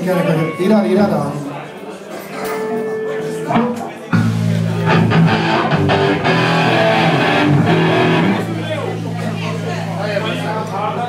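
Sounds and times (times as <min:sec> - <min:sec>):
amplified guitar: 0:02.5 - 0:11.0.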